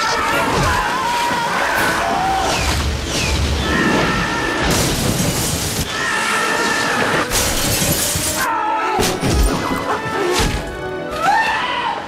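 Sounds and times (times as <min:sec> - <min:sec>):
glass shattering: 0:07.2 - 0:09.8.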